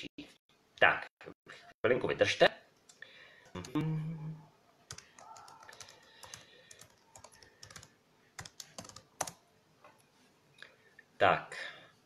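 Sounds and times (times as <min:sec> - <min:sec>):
computer keyboard typing: 0:04.9 - 0:09.4.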